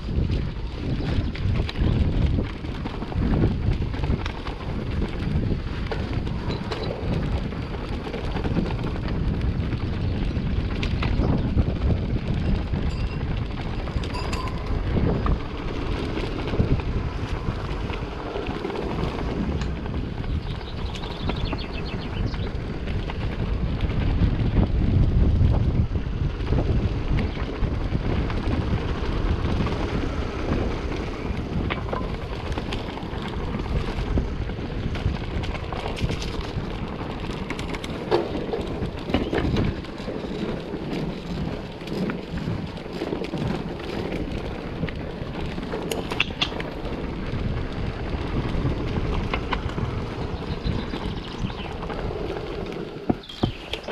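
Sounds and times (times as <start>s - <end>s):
bike clicks and rattles: 0.0s - 53.9s
wind buffeting microphone: 0.0s - 53.9s
tyres running over stones: 28.4s - 53.9s.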